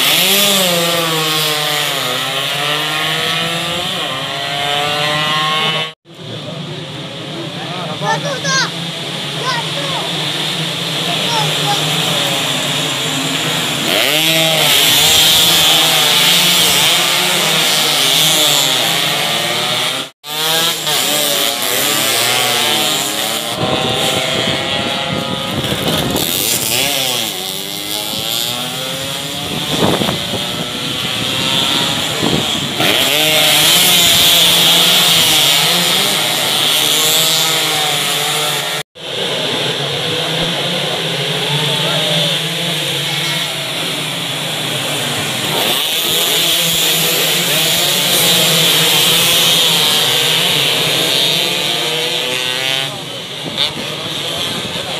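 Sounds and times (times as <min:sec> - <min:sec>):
racing motorcycles passing: 0:00.0 - 0:54.9.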